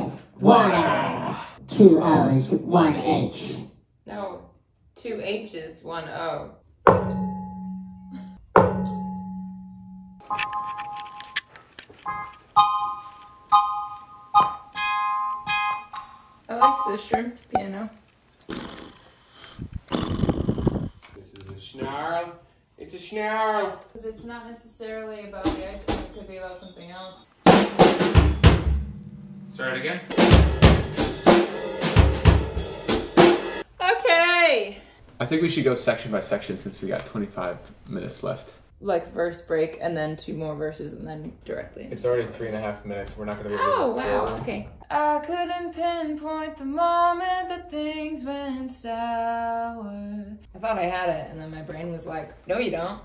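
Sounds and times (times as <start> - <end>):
electronic keyboard chords: 12.0 - 17.2
bass drum hits: 27.8 - 33.4.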